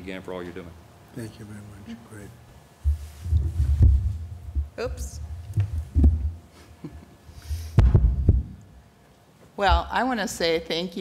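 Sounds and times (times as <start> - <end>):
microphone handling thumps: 2.8 - 6.4, 7.7 - 8.6, 9.6 - 10.0.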